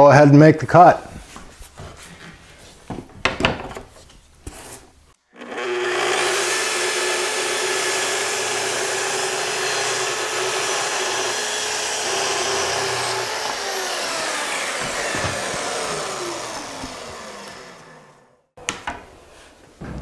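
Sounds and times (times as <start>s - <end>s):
circular saw cutting plywood: 5.2s - 18.4s
dust extractor running: 5.3s - 18.4s
saw motor winding down: 5.3s - 18.4s.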